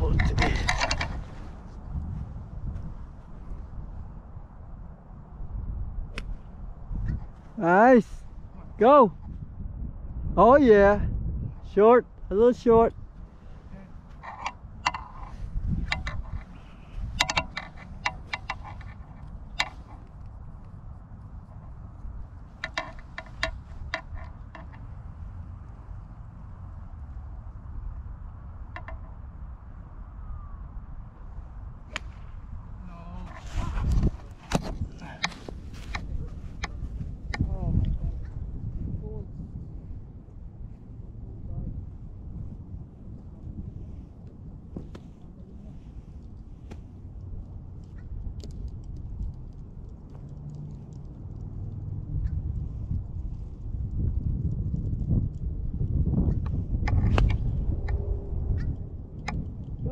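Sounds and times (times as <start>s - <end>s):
wind rumble on microphone: 0.0s - 59.9s.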